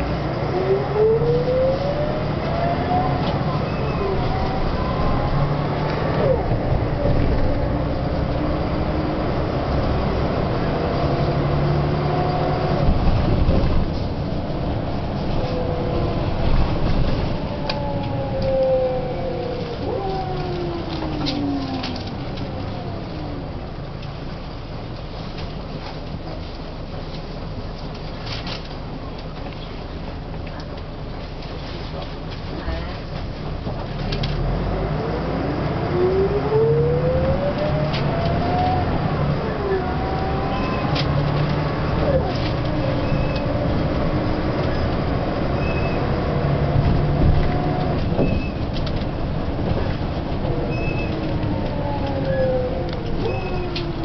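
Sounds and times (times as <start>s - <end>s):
bus diesel engine rumbling: 0.0s - 54.0s.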